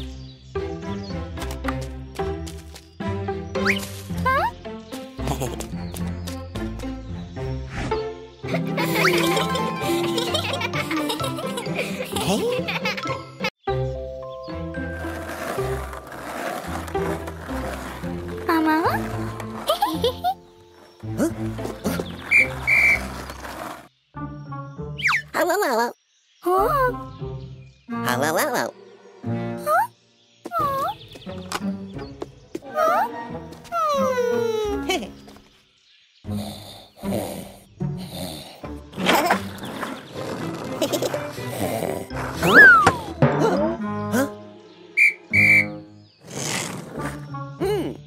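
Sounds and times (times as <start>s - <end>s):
cartoon background music: 0.0s - 23.4s, 24.1s - 35.4s, 36.3s - 48.0s
whistle sound effects: 22.3s - 23.0s, 42.4s - 43.0s, 45.0s - 45.8s
police whistle blasts: 45.0s - 45.8s.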